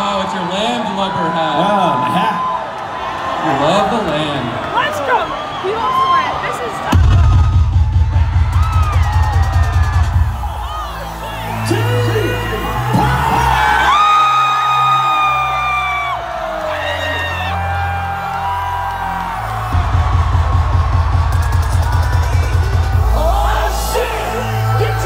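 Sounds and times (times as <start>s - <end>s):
crowd cheering and whooping: 0.0s - 25.0s
pulsing bass beat: 6.9s - 14.0s, 18.5s - 25.0s.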